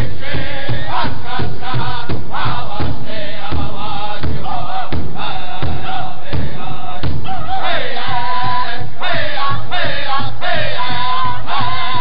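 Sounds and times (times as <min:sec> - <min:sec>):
large hide drum beats: 0:00.0 - 0:12.0
men singing high-pitched together: 0:00.0 - 0:12.0.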